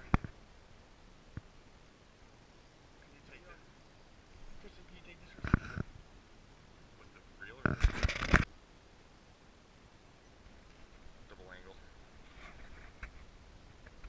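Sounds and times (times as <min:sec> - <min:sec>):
camera handling knocks and clatter: 0:07.6 - 0:08.5.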